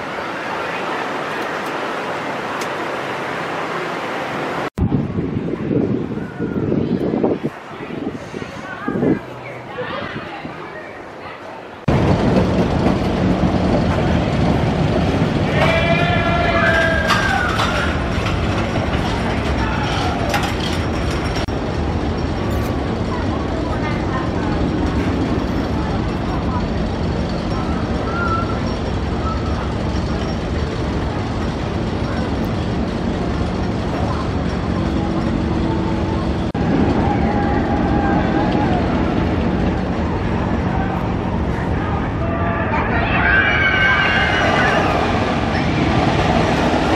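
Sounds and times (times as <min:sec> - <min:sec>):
voices: 0:04.1 - 0:11.9, 0:13.0 - 0:46.9
roller coaster rumbling on wooden track: 0:11.8 - 0:46.9.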